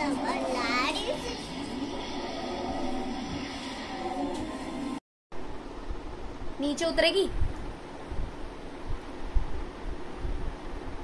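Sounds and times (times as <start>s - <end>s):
little girl's voice: 0.0s - 1.6s.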